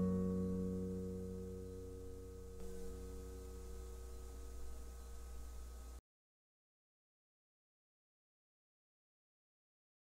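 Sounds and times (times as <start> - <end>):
acoustic guitar chord ringing: 0.0 - 6.0
faint low hum: 0.0 - 6.0.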